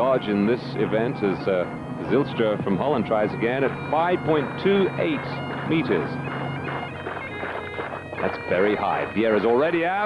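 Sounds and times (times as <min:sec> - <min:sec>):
bagpipes playing: 0:00.0 - 0:10.0.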